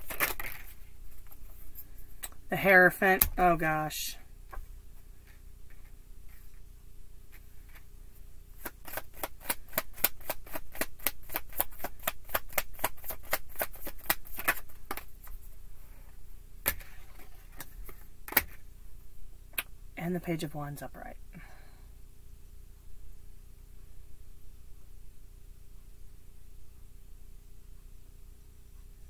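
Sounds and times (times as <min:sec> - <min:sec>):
cards being shuffled: 0:00.0 - 0:02.3, 0:08.6 - 0:15.5, 0:16.6 - 0:18.6
sharp card snaps: 0:08.6 - 0:15.1.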